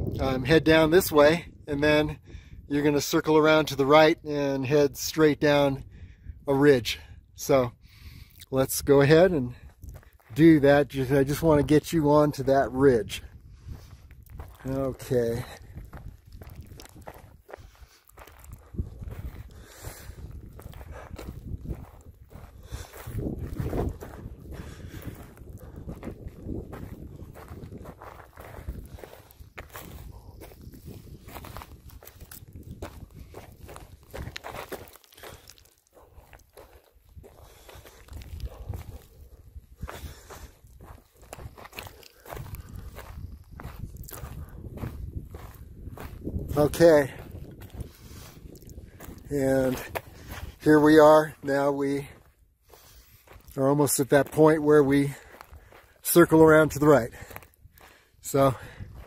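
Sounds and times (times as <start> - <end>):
footsteps on loose gravel: 8.7 - 59.0.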